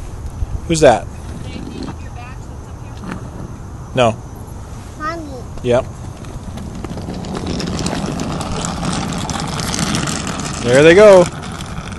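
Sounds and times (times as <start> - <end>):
motor vehicle rumble: 0.0 - 11.9.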